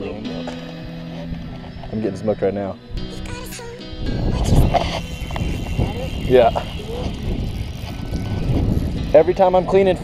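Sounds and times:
wind buffeting microphone: 3.8 - 10.0.

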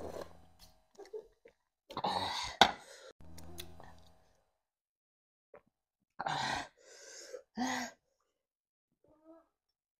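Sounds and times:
woman breathing: 6.4 - 8.0.

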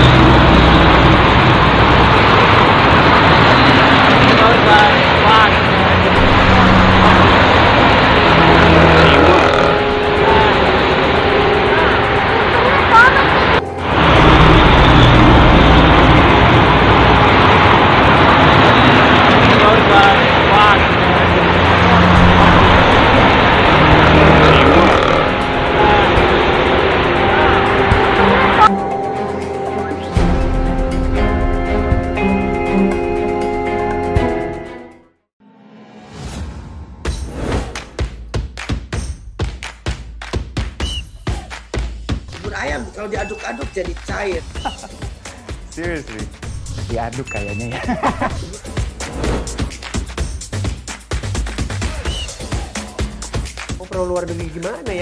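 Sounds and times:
road traffic passing: 0.0 - 37.0, 41.8 - 55.0
truck passing: 0.0 - 37.8
indistinct voices: 4.2 - 16.9, 19.4 - 28.7.

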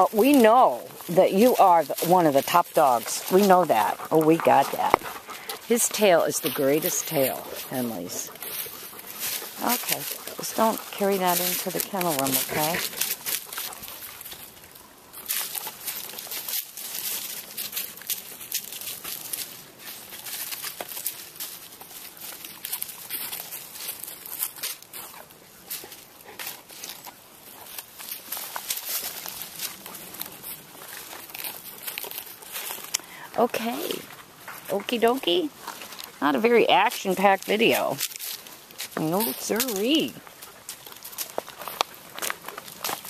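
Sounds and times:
dry leaves and twigs crackling: 0.0 - 43.0.

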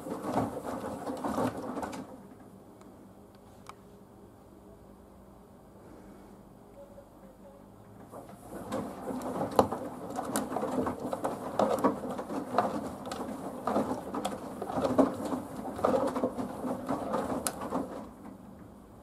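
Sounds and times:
wet laundry sloshing: 0.0 - 2.1, 8.3 - 18.2
washing machine drum turning: 8.2 - 18.3.

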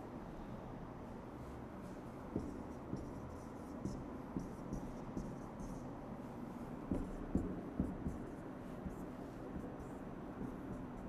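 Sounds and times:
marker tip tapping board: 2.3 - 5.4, 6.9 - 11.0.

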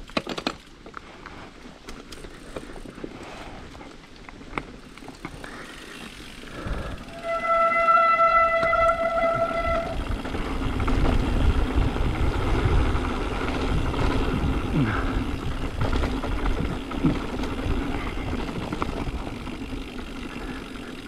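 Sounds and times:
bike tyres rattling over stones: 0.0 - 21.0
high-pitched whine from bike: 5.1 - 21.0
wind rushing over microphone: 8.5 - 19.4.

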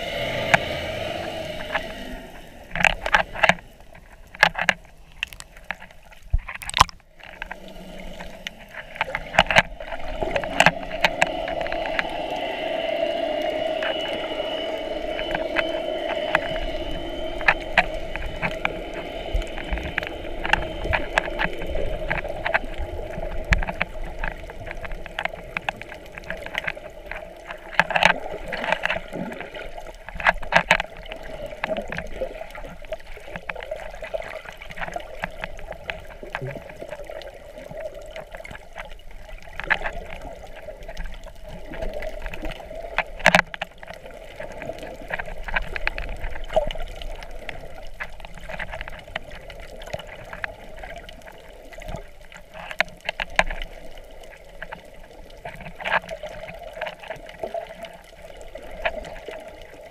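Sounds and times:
underwater drone: 0.0 - 59.9
sharp clicks and knocks: 2.7 - 7.6, 8.2 - 12.2.

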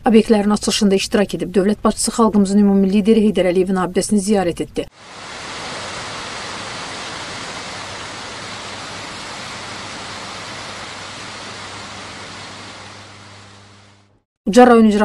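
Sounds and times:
fountain water splashing: 5.0 - 14.1.

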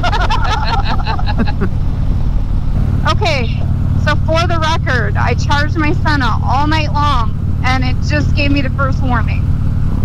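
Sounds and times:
laughter: 0.0 - 1.7
motorcycle engine rumble: 0.0 - 10.0
wind noise: 0.0 - 10.0.

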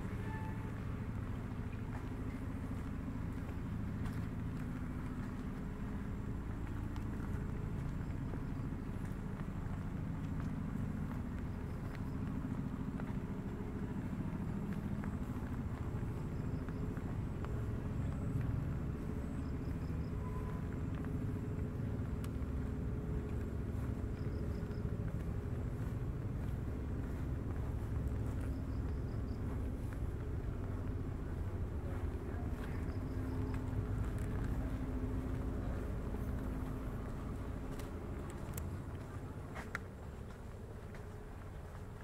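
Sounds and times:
low rumble: 0.0 - 42.0.

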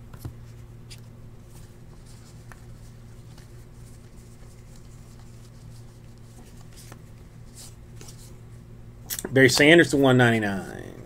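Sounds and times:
steady low hum: 0.0 - 11.0
trading cards rustling: 0.9 - 8.4.

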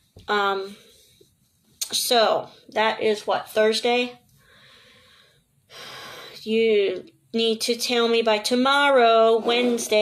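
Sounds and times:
woman breathing: 4.3 - 6.4.

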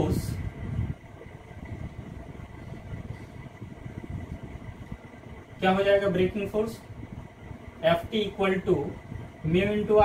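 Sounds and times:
faint high whine: 0.0 - 10.0
low background rumble: 0.0 - 10.0.

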